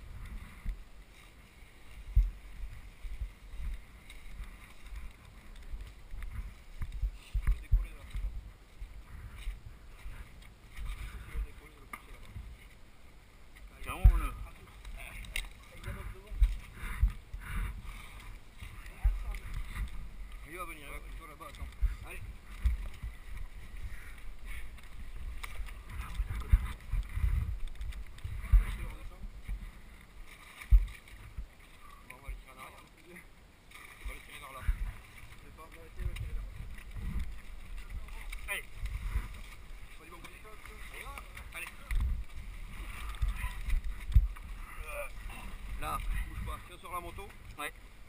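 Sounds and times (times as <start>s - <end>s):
wind rumble on microphone: 0.0s - 32.5s, 34.0s - 48.0s
low thumps on microphone: 2.1s - 3.8s, 6.2s - 10.2s, 13.9s - 14.4s, 21.6s - 24.2s, 25.2s - 29.9s, 30.7s - 31.5s, 41.8s - 44.6s
people talking indistinctly: 9.0s - 12.6s, 13.6s - 27.6s, 34.0s - 47.8s.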